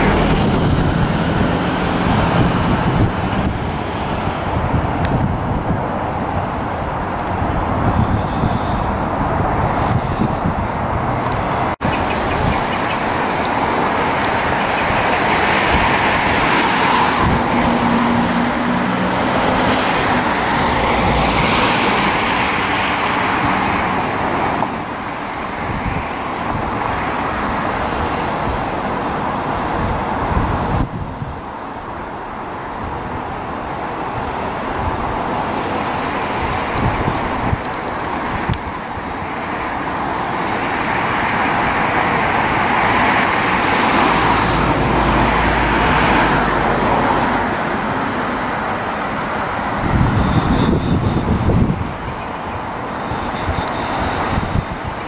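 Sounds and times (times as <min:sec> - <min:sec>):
engine and traffic rumble: 0:00.0 - 0:55.0.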